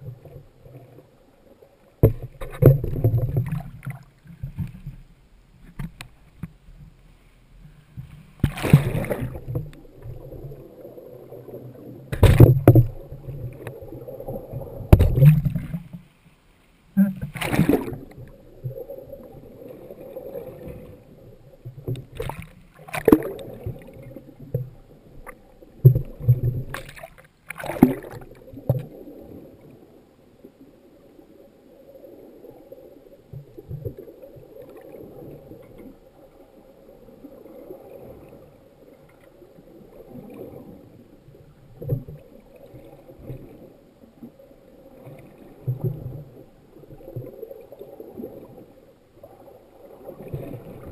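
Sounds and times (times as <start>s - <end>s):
muffled water sloshing and bubbling: 0.0s - 50.9s
loud thumps and splashes: 8.4s - 9.6s, 12.1s - 13.0s, 14.9s - 15.8s, 17.2s - 18.0s.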